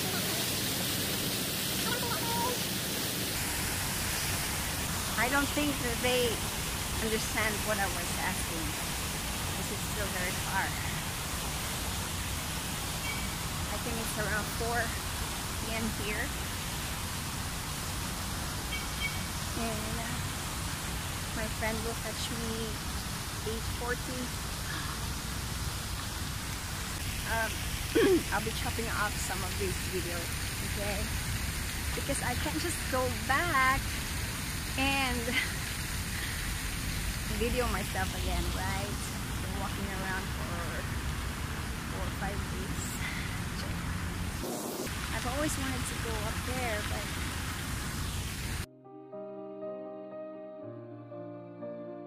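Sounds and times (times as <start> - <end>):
loud rushing outdoor noise: 0.0 - 18.8, 30.1 - 48.7
soft instrumental music: 48.7 - 52.0.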